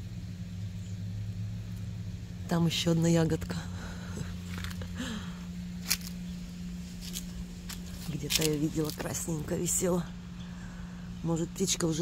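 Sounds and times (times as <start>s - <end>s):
steady low hum: 0.0s - 12.0s
leaves and canes rustling: 3.8s - 11.2s.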